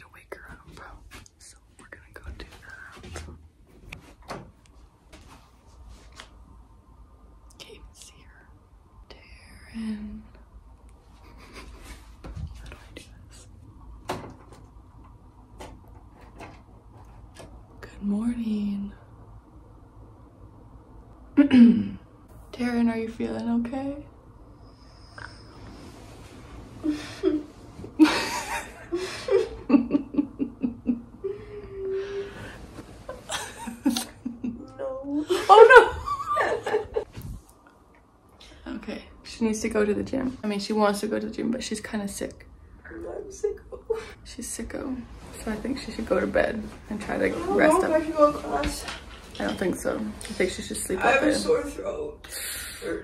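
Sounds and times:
woman whispering: 0.0 - 3.2, 7.5 - 10.4, 12.6 - 13.5
woman laughing quietly: 11.1 - 12.3, 26.8 - 37.3
person laughing: 33.1 - 37.0.

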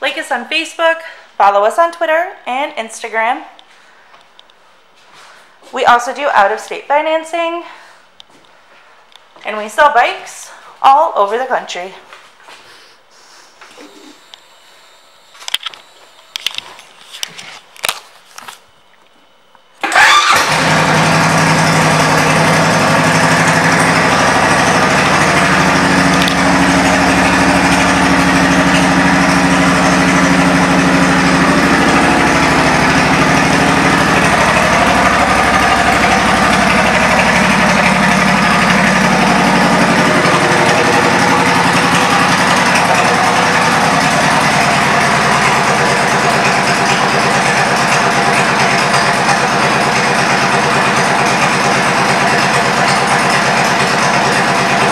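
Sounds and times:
motorcycle engine idling: 20.0 - 54.9.

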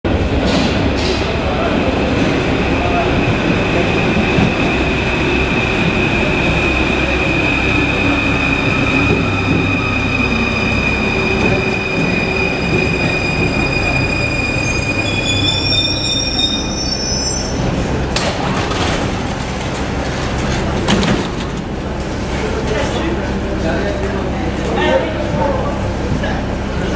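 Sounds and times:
train running on steel wheels: 0.1 - 26.9
brakes squealing: 7.0 - 18.0.

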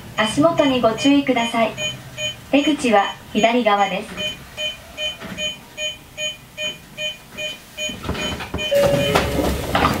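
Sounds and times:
short electronic beeps: 1.7 - 3.6, 4.2 - 9.4.

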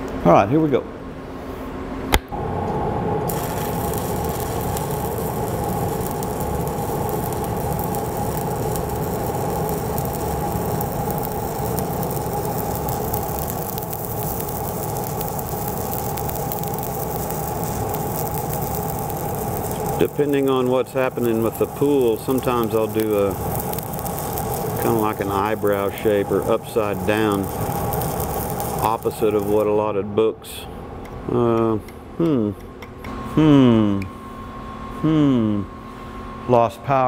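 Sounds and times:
welding arc strike pop: 2.1 - 29.6
welding arc crackling sizzle: 2.3 - 30.6.

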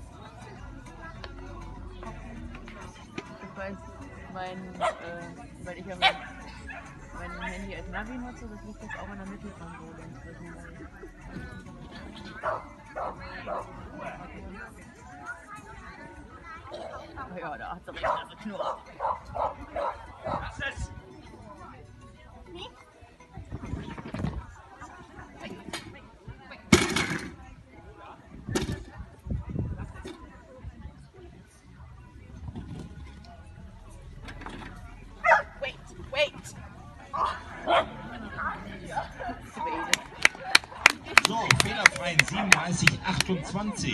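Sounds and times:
dog barking: 6.0 - 6.8, 18.0 - 20.4, 35.2 - 35.5, 37.2 - 38.0
hands clapping: 39.9 - 43.4.

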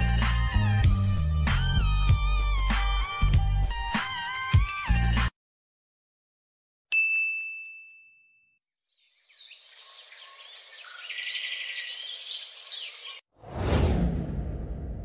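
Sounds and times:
bell ding: 6.9 - 8.6
birds chirping: 8.9 - 13.2.

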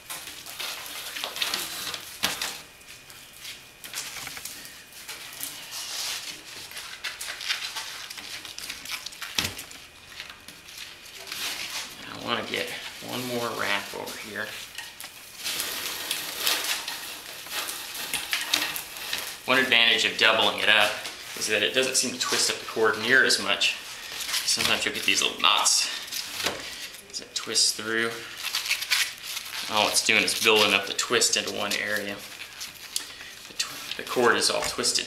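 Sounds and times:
paper cord rasping through seat: 3.4 - 14.8, 28.0 - 35.0.

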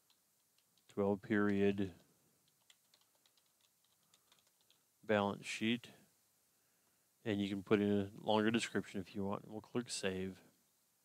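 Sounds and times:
faint keyboard typing: 0.0 - 4.9.

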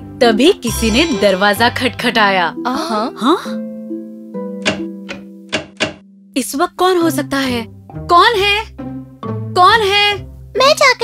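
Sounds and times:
soft background music: 0.0 - 11.0
knocking on a door: 4.6 - 6.0.

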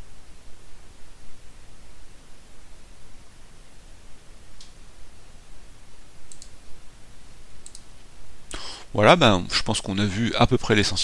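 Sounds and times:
computer mouse clicks: 6.3 - 6.6, 7.6 - 7.9.

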